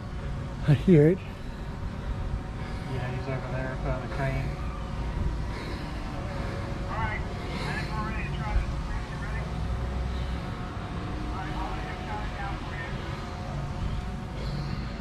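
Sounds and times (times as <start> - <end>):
indistinct voices talking: 0.0 - 15.0
steady low rumble: 0.0 - 15.0.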